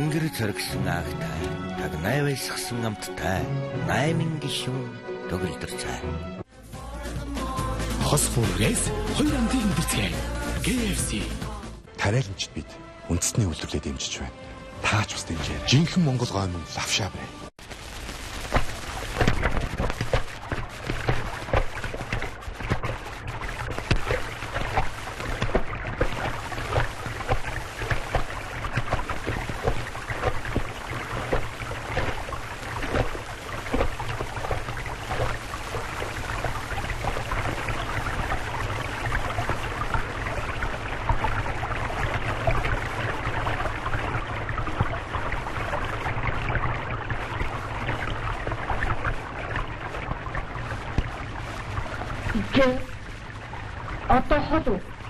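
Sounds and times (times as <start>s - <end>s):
rocky stream babbling: 18.4s - 55.0s.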